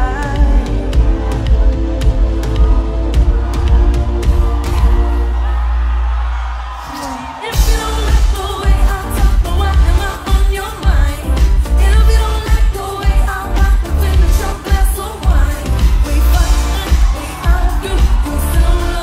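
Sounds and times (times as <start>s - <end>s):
woman singing: 0.0s - 1.7s, 6.9s - 19.0s
live pop band with heavy beat: 0.0s - 5.4s, 6.8s - 19.0s.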